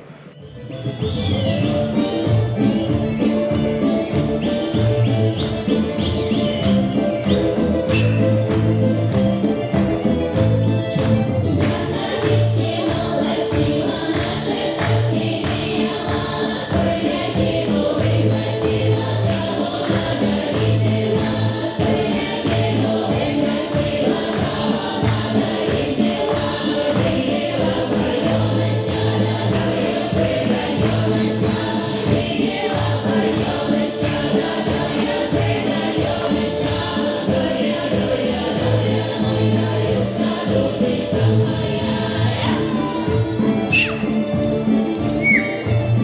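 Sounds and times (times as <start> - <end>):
instrumental accompaniment with bass beat: 0.5 - 12.1, 42.4 - 46.0
choir singing folk song: 1.6 - 46.0.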